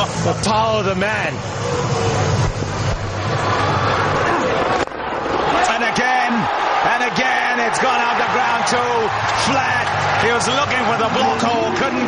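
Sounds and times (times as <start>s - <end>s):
stadium crowd din: 0.0s - 12.0s
spectators whooping: 3.4s - 12.0s.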